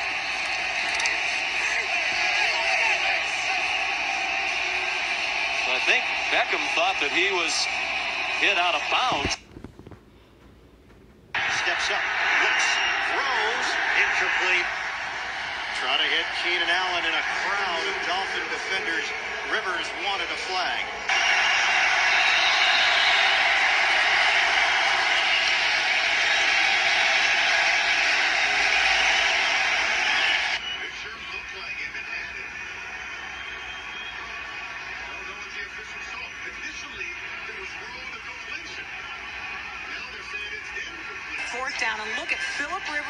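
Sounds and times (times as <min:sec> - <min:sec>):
stadium crowd noise: 0:00.0 - 0:09.5, 0:11.3 - 0:43.0
faint commentary: 0:34.8 - 0:43.0.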